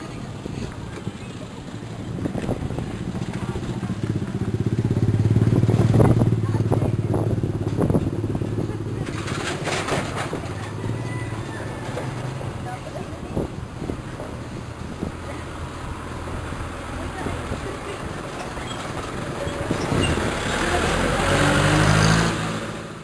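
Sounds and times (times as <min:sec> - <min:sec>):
motorcycle passing: 0:00.0 - 0:23.0.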